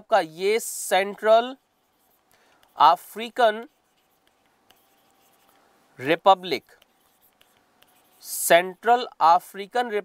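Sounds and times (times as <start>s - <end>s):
stylus tapping and scratching on tablet: 0.9s - 9.2s.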